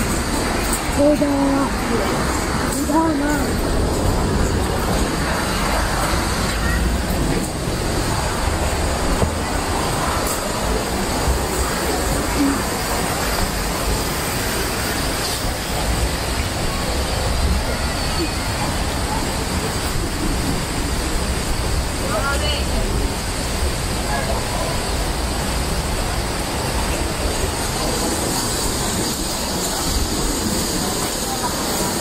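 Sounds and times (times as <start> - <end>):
outdoor rumble and hiss: 0.0 - 32.0
faint voices of people: 16.2 - 20.9, 23.9 - 32.0.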